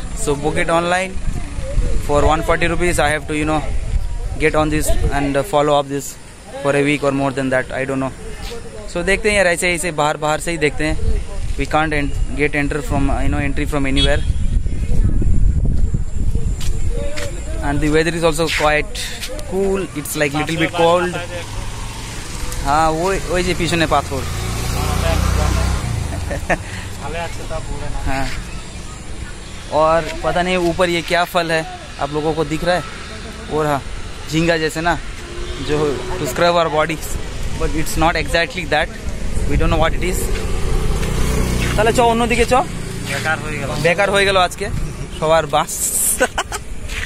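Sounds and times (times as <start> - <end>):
man talking: 2.0 - 14.3, 16.8 - 21.6, 22.6 - 26.0, 27.0 - 28.5, 29.6 - 40.5, 41.6 - 46.5
passing car engine hum: 20.4 - 29.2, 31.7 - 45.3.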